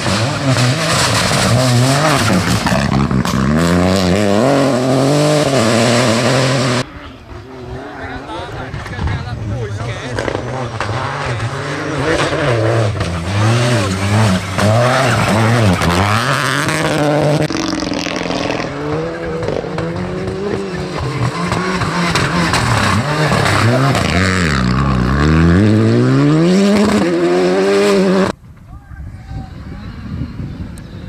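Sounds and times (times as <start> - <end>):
rally car engines revving: 0.0 - 28.4
tyres skidding on gravel: 13.0 - 25.0.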